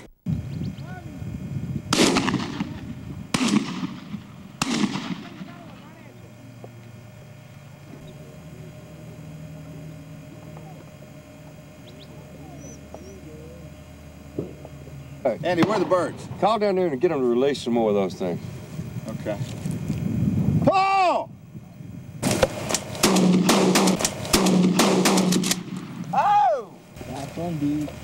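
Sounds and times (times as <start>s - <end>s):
shotgun shots echoing: 1.9s - 5.7s, 15.5s - 16.3s, 22.2s - 26.0s.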